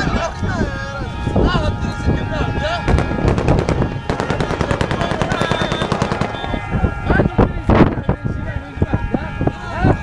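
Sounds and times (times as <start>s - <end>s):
automatic gunfire: 2.9s - 6.7s.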